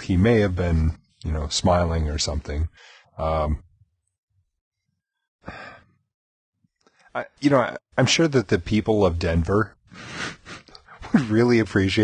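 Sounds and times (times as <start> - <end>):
man breathing: 2.8 - 3.2, 5.4 - 6.0, 9.9 - 10.8.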